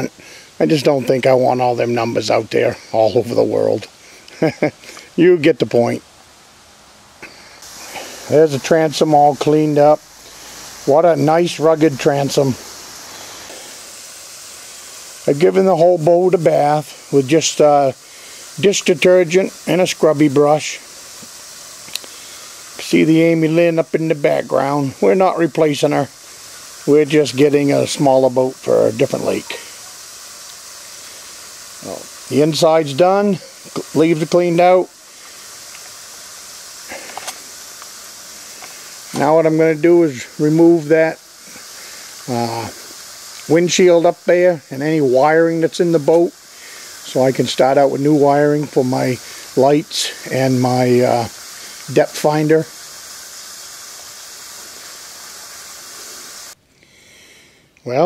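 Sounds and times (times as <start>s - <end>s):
man speaking: 0.0s - 6.0s, 8.3s - 10.0s, 10.8s - 12.8s, 15.2s - 18.0s, 18.6s - 20.8s, 22.8s - 26.1s, 26.8s - 29.7s, 31.8s - 34.9s, 39.1s - 41.2s, 42.2s - 42.8s, 43.4s - 46.4s, 47.0s - 52.7s
steady background hiss: 0.0s - 58.0s
man's voice: 10.8s - 12.6s.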